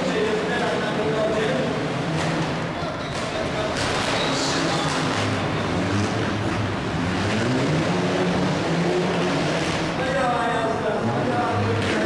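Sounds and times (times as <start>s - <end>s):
car engine revving: 0.0s - 12.0s
large hall noise: 0.0s - 12.0s.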